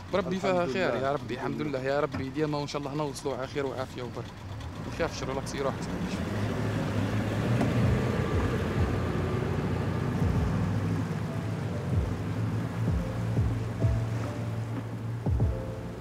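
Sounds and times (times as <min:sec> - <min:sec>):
motorboat engine drone: 0:00.0 - 0:16.0
water noise: 0:00.0 - 0:16.0
music score: 0:07.9 - 0:16.0.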